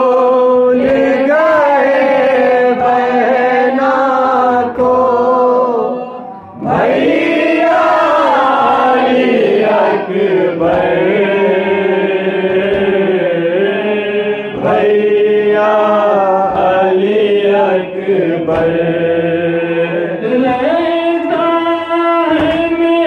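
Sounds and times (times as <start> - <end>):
man singing a lament unaccompanied: 0.0 - 23.0.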